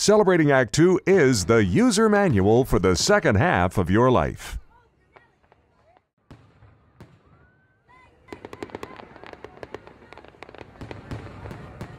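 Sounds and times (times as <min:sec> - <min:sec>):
fireworks crackling and banging: 0:04.7 - 0:11.9.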